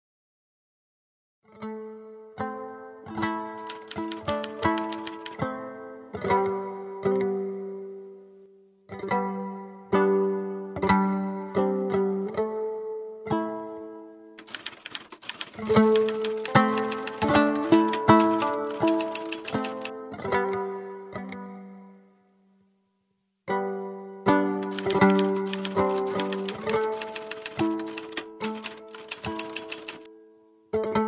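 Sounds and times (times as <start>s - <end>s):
typewriter key clicks: 3.6s - 5.4s, 14.4s - 19.9s, 24.6s - 30.1s.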